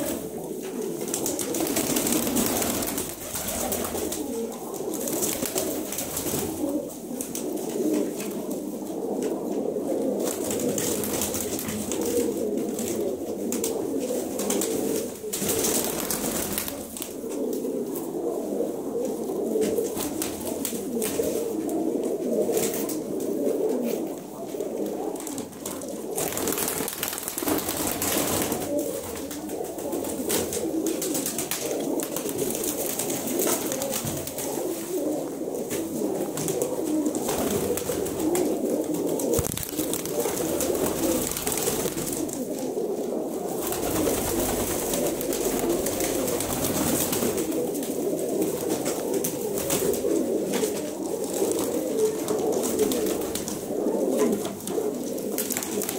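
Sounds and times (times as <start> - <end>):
pigeons cooing: 0.0 - 55.9.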